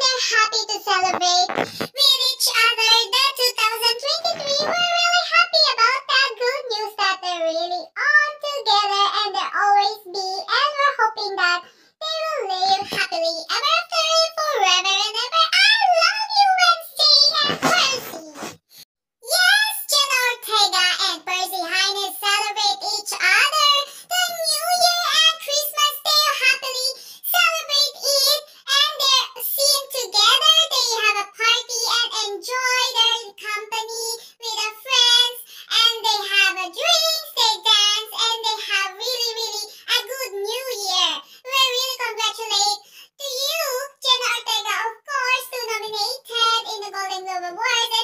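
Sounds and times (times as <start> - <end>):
high-pitched voice singing: 0.0 - 18.6, 19.2 - 48.0.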